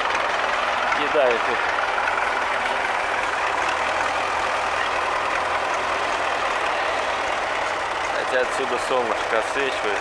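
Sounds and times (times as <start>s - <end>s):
tractor diesel engines running: 0.0s - 10.0s.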